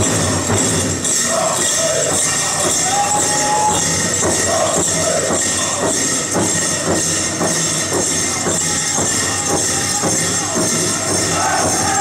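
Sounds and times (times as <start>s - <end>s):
jingling bells: 0.0s - 12.0s
steady drumbeat: 0.0s - 12.0s
people singing: 1.0s - 12.0s.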